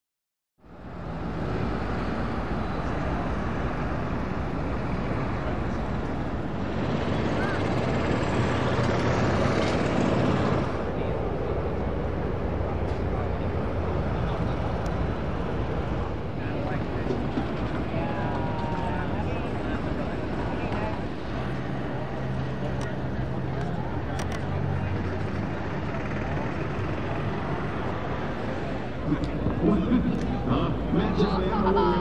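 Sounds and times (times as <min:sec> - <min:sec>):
voices of people: 0:02.2 - 0:32.0.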